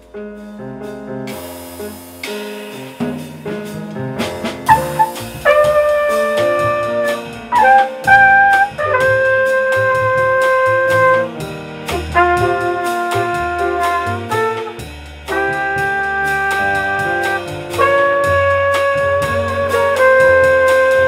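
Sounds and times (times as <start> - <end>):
piano: 0.0 - 21.0
upright bass: 0.0 - 21.0
trumpet long held notes: 4.9 - 21.0.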